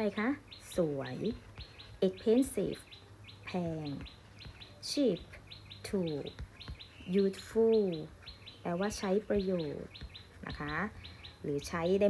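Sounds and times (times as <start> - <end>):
bird chirping: 0.0 - 12.0.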